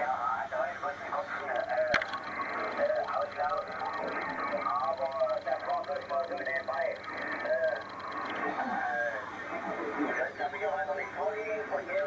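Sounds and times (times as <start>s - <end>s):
person talking over radio speaker: 0.0s - 12.0s.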